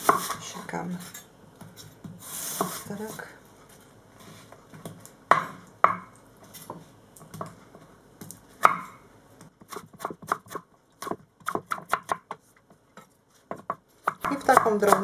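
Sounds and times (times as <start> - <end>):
knife chopping on wooden board: 8.6 - 8.9, 9.5 - 12.4, 13.5 - 15.0.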